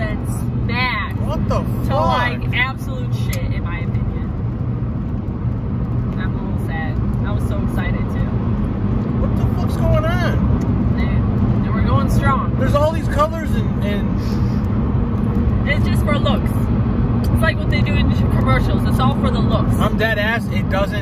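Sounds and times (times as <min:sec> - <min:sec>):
car engine hum inside cabin: 0:00.0 - 0:21.0.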